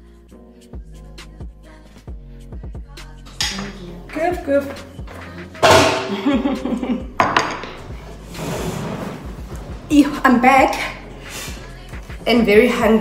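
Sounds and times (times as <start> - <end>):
background music: 0.0 - 13.0
dishes and cutlery clattering: 3.3 - 4.0, 5.6 - 6.3, 7.2 - 7.9.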